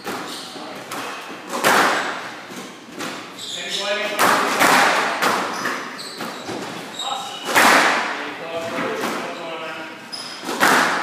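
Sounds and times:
loud thud on squash court: 0:10.5 - 0:11.0.

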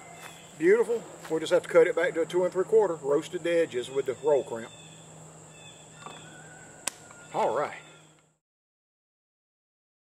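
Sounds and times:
sharp click: 0:06.8 - 0:07.1.

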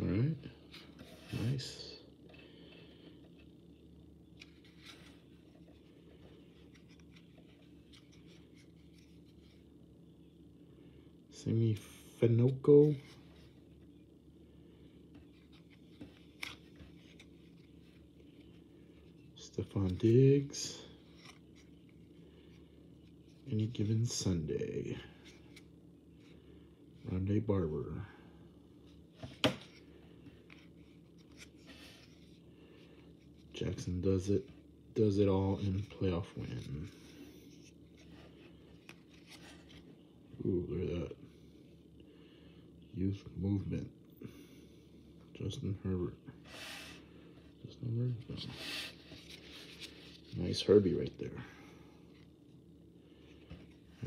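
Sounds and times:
low steady hum: 0:00.0 - 0:54.0
cards sliding and rustling: 0:04.4 - 0:09.6, 0:15.2 - 0:21.9, 0:29.2 - 0:32.4, 0:35.4 - 0:39.9, 0:48.3 - 0:50.3.

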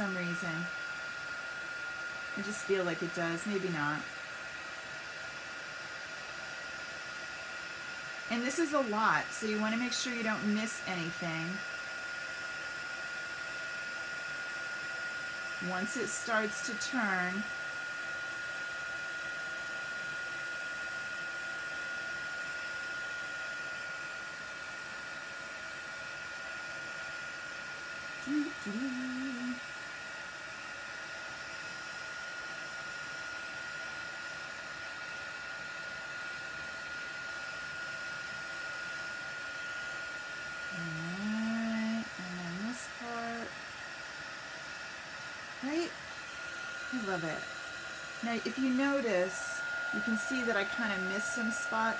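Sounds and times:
heat tool blowing hot air: 0:00.0 - 0:51.9.

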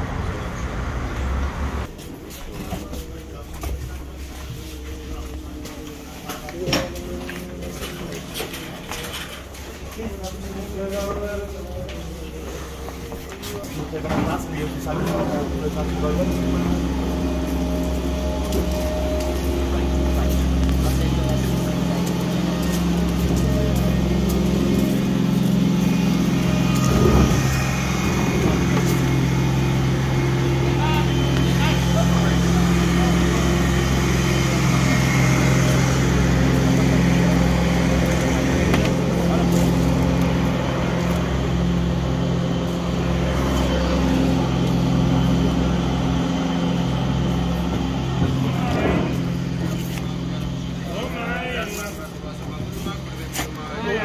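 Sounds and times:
indistinct voices: 0:00.0 - 0:54.0
low machine hum: 0:00.0 - 0:54.0.

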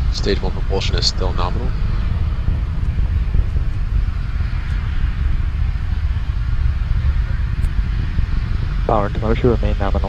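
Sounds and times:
rocket engines rumbling: 0:00.0 - 0:10.0.

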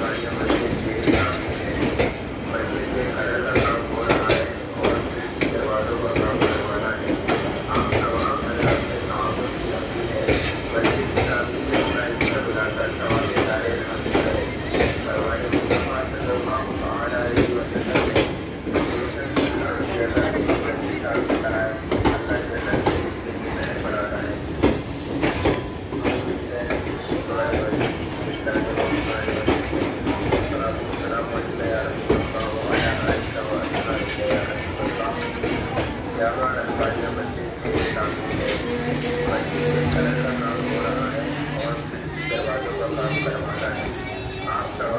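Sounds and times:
train wheels clattering on track: 0:00.0 - 0:44.9.

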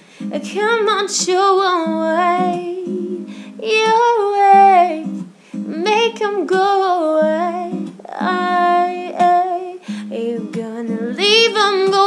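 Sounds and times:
woman singing sliding notes: 0:00.2 - 0:12.0.

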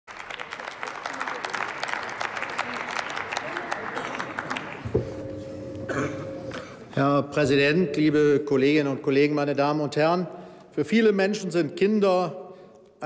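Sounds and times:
crowd applauding: 0:00.1 - 0:06.1.

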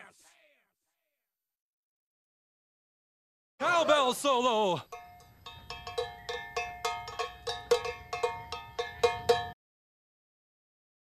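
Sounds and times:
cowbell struck in rhythm: 0:04.8 - 0:09.6.

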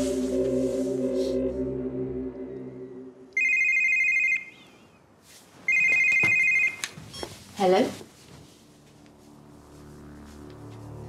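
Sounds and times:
telephone ringing: 0:03.4 - 0:04.6, 0:05.7 - 0:06.8.

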